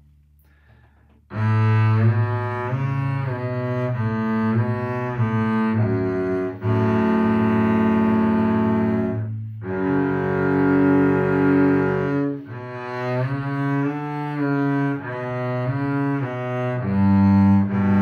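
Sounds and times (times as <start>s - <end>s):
bowed double bass: 0.0s - 18.0s.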